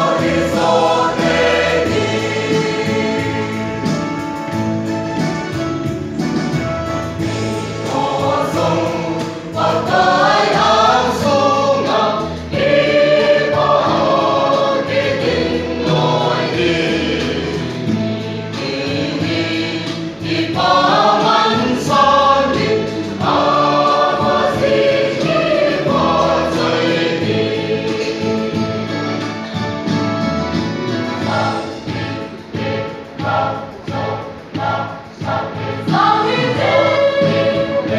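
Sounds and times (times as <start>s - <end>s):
mixed choir singing a hymn: 0.0s - 6.0s, 7.0s - 37.9s.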